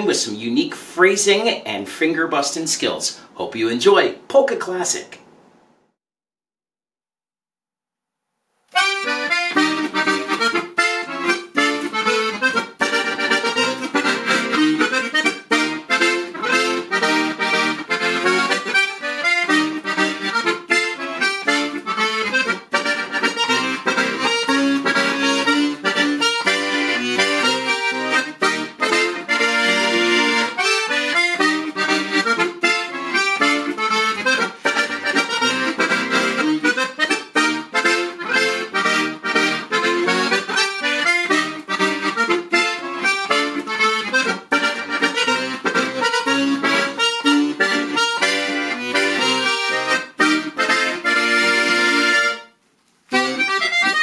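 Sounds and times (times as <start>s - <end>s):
accordion playing polka: 8.7s - 54.0s.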